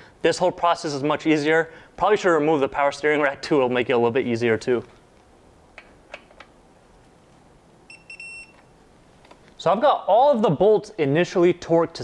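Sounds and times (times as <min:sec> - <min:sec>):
torque wrench beep: 0:07.9 - 0:08.7.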